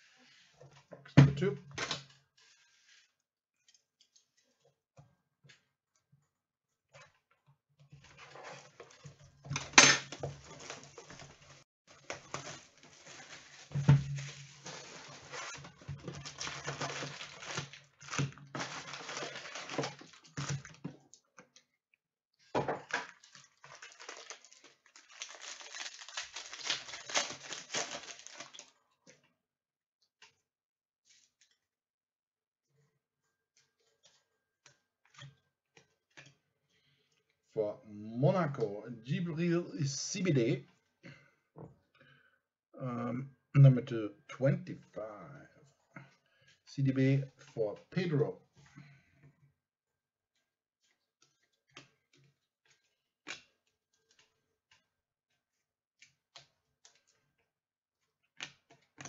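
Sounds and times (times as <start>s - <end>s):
foil wrappers crinkling and tearing: 9.8s - 20.8s, 22.9s - 28.8s.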